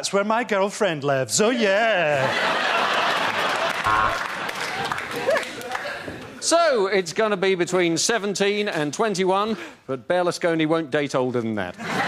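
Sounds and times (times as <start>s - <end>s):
audience laughing: 2.1s - 6.2s
audience applauding: 2.6s - 6.4s.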